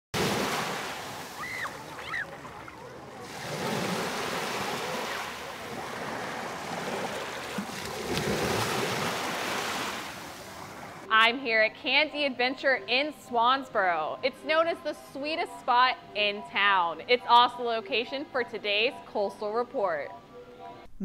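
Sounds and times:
short high cries: 1.4s - 2.3s
surf washing onto sandy beach: 3.2s - 11.0s.

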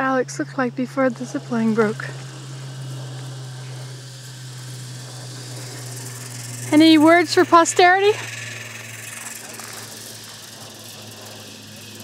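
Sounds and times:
zipline trolley whirring on cable: 0.0s - 12.0s.

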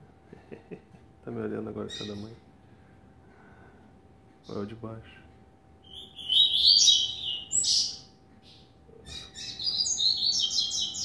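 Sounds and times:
bird singing clipped high notes: 5.8s - 11.0s.

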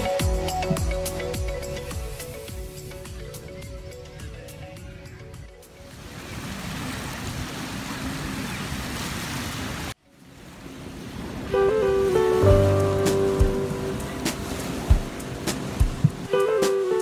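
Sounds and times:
lake waves washing on shore: 5.8s - 17.0s
acoustic guitar music: 11.5s - 17.0s.

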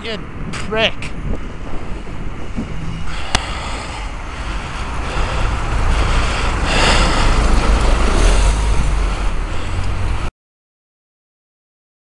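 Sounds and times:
road noise: 0.0s - 10.3s
traffic: 0.0s - 10.3s
wind rumble on microphone: 0.0s - 10.3s.

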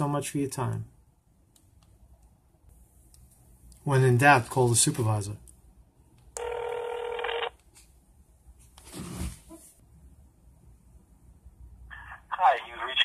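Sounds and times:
telephone ringing tone: 6.4s - 7.6s.

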